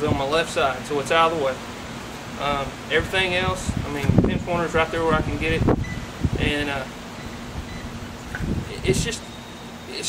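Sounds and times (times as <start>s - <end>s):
faint steady hum: 0.0s - 10.0s
man talking: 2.4s - 5.7s, 6.4s - 7.0s, 8.6s - 9.3s.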